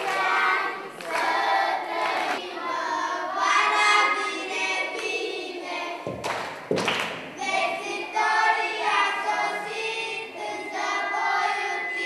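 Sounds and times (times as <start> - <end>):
children singing in chorus: 0.0 - 6.4, 7.3 - 12.0.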